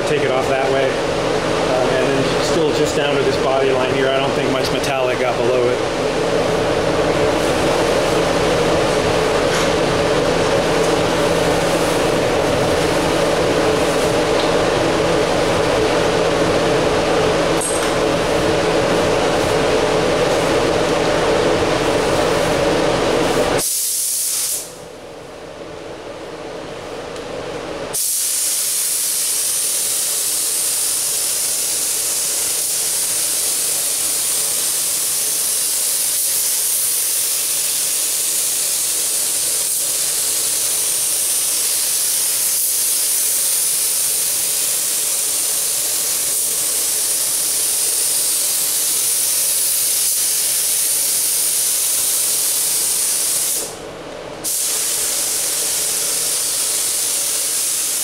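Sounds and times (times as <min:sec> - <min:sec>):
steady mechanical drone: 0:00.0 - 0:23.6
spray gun air hiss: 0:23.2 - 0:24.8, 0:27.9 - 0:53.8, 0:54.4 - 0:58.0.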